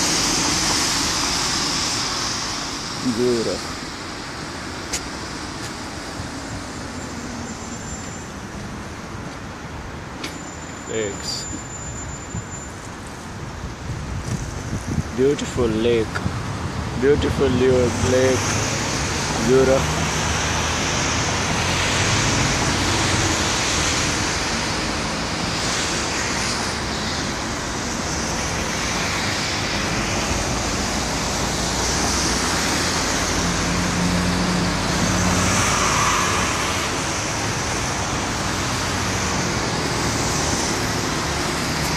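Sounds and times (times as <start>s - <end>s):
road traffic passing: 0.0s - 41.9s.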